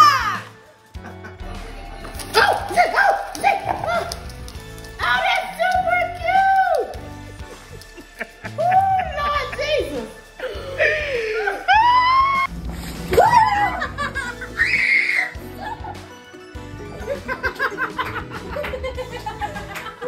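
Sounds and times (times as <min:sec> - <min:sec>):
background music: 0:00.0 - 0:20.0
woman crying out: 0:10.4 - 0:12.5.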